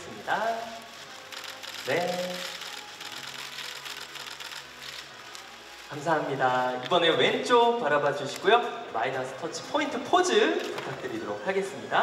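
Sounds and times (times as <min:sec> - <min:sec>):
camera shutters clicking: 0:01.2 - 0:05.5, 0:10.5 - 0:11.0.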